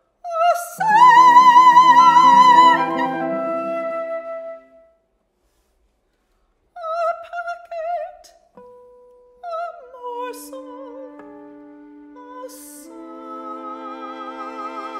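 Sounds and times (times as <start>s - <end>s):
woman singing classical vibrato: 0.2s - 4.7s, 9.4s - 14.9s
chamber ensemble notes: 0.8s - 4.8s, 10.4s - 14.9s
held instrumental note: 0.8s - 4.8s.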